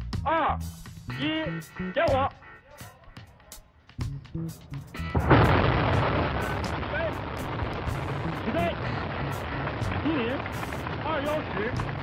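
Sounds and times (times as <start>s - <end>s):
rocket engines igniting: 4.9s - 12.0s.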